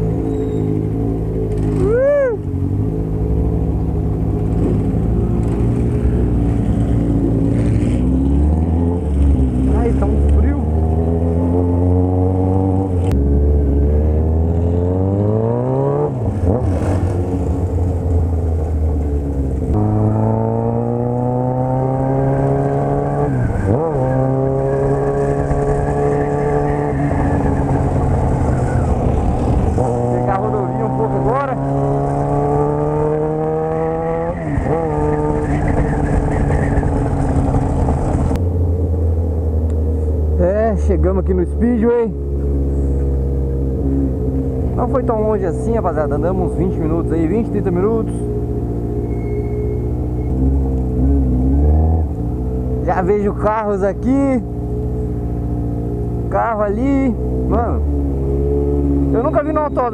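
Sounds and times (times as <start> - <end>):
motorcycle engine shifting gears: 0.0 - 59.9.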